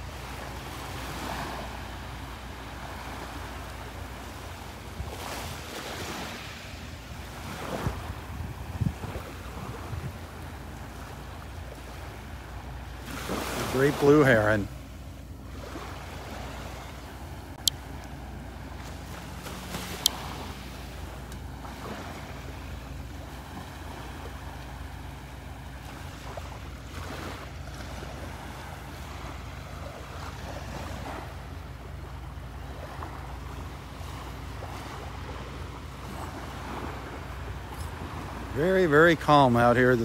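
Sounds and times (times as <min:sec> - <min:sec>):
small waves lapping on shore: 0:00.0 - 0:40.0.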